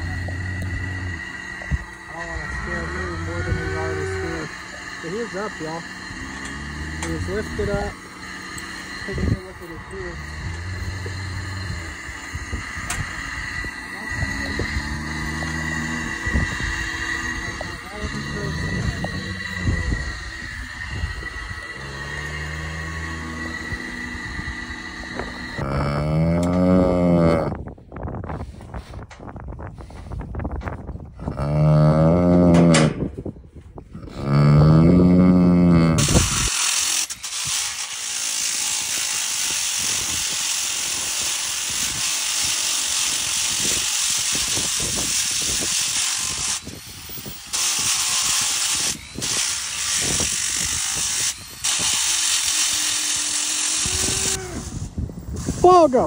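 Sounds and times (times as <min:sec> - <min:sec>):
cow mooing: 0:00.0 - 0:04.7, 0:06.2 - 0:07.6, 0:14.0 - 0:20.2, 0:21.4 - 0:24.2, 0:25.6 - 0:27.6, 0:31.3 - 0:32.9, 0:34.1 - 0:36.0
angle grinder grinding hoof: 0:00.0 - 0:56.0.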